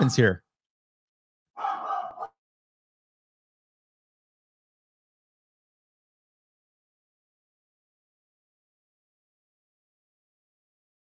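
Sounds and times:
dog barking: 0:01.6 - 0:02.4.

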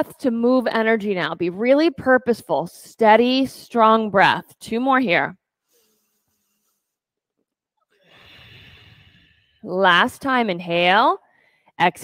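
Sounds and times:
long hissing yoga breath: 0:08.1 - 0:09.5.

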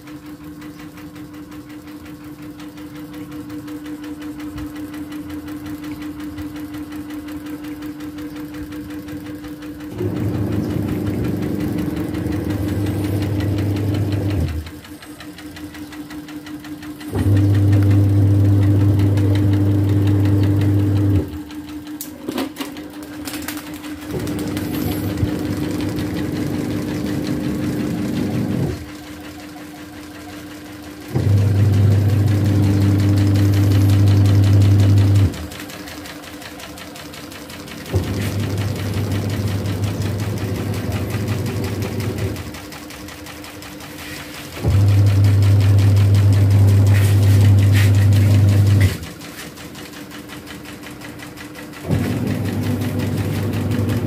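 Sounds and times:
fan motor hum: 0:00.0 - 0:54.0.

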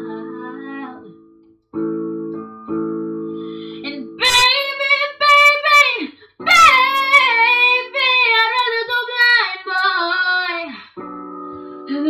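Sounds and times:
girl singing wordless notes: 0:00.0 - 0:01.2, 0:03.7 - 0:12.0
electronic keyboard chords: 0:00.0 - 0:05.7, 0:06.4 - 0:10.1, 0:11.0 - 0:12.0
singer breath: 0:03.3 - 0:03.9.

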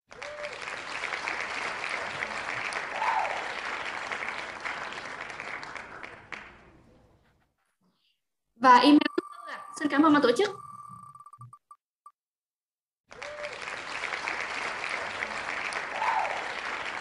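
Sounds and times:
recorded applause: 0:00.1 - 0:07.0, 0:13.1 - 0:17.0.

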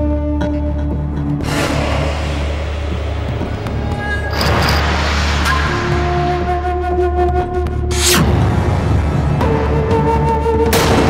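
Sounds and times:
low drone: 0:01.3 - 0:07.3.

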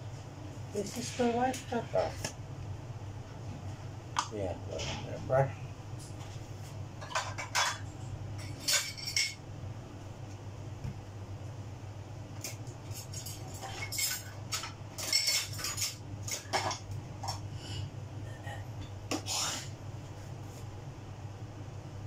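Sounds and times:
steady low hum: 0:00.0 - 0:22.0
kitchen utensils clinking: 0:07.0 - 0:09.4, 0:12.4 - 0:17.4.

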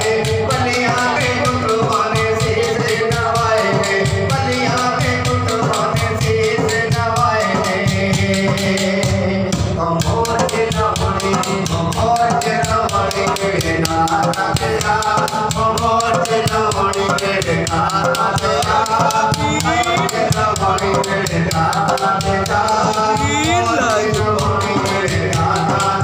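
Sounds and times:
hand drum: 0:00.0 - 0:26.0
man singing devotional song: 0:00.0 - 0:26.0
rattling percussion: 0:00.0 - 0:26.0.

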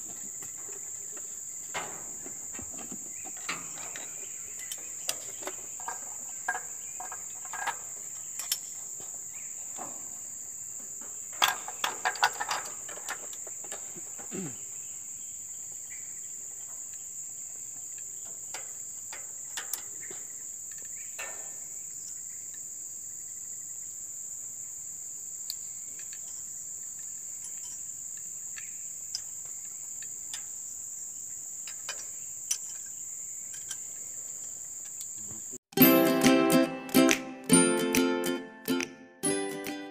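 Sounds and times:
high-pitched insect chorus: 0:00.0 - 0:35.6.

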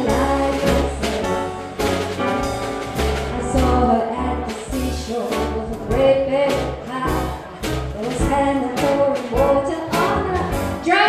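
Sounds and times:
woman singing: 0:00.0 - 0:01.8, 0:03.0 - 0:11.0
double bass: 0:00.0 - 0:11.0
drums: 0:00.0 - 0:11.0
piano: 0:00.0 - 0:11.0.

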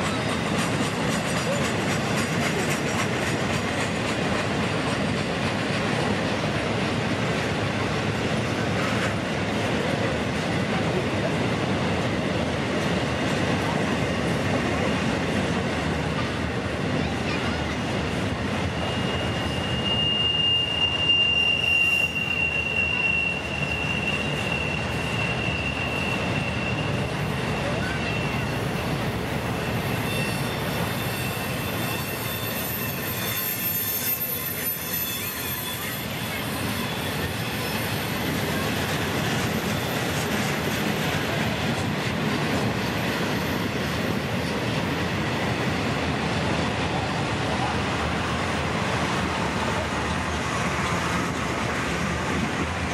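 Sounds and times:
train wheels rumbling on rails: 0:00.0 - 0:52.9
high wheel squeal: 0:17.1 - 0:41.9.

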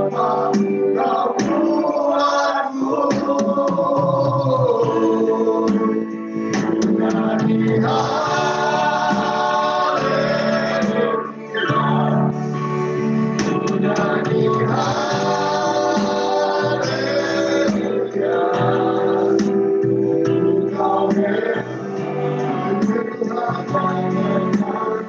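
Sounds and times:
instrumental backing: 0:00.0 - 0:25.0
voices singing worship song: 0:00.0 - 0:25.0.

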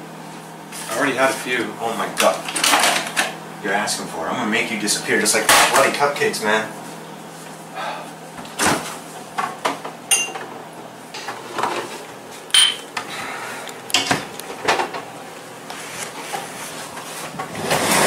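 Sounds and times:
glassware clinking: 0:10.1 - 0:10.4, 0:12.6 - 0:12.9.

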